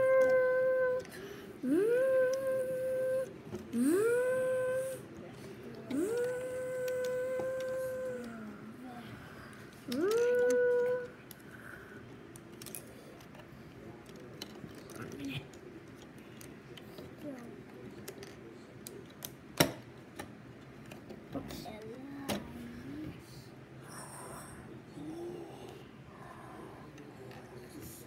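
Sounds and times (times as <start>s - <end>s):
plastic toy bricks clicking: 0.0s - 1.1s, 5.9s - 8.4s, 9.9s - 11.4s, 12.3s - 17.3s.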